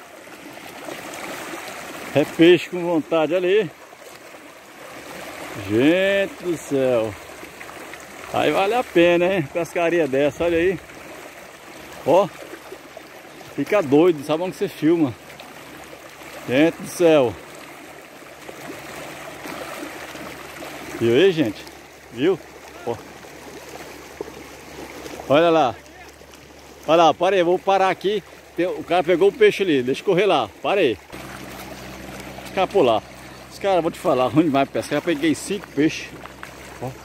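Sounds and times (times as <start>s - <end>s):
fish thrashing in water: 0.0s - 27.0s, 31.0s - 37.0s.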